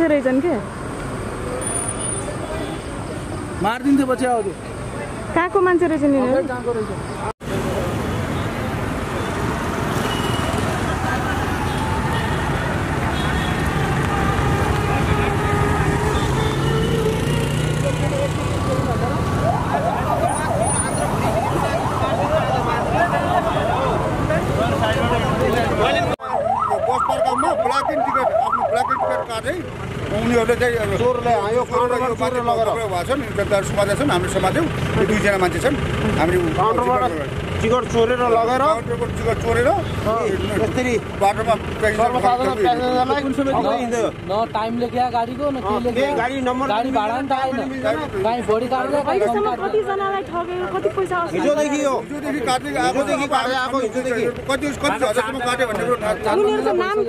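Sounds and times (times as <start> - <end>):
road traffic hum: 0.0 - 57.0
street noise: 0.0 - 57.0
police siren wailing: 10.9 - 17.2, 18.6 - 29.6.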